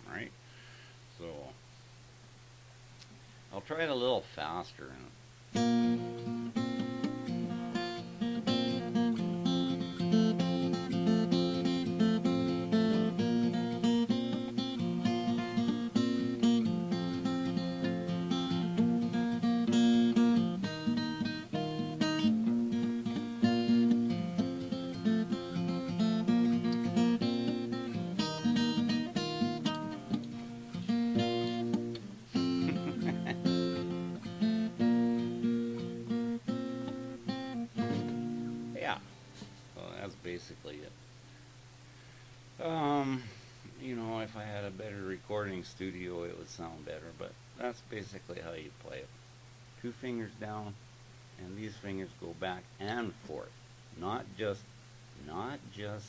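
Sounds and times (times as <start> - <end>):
fingerpicked acoustic guitar: 5.5 - 40.4.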